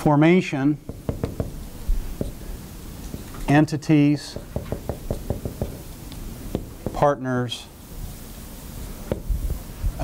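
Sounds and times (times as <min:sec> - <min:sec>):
marker tapping on whiteboard: 0:00.9 - 0:01.5, 0:04.4 - 0:05.8.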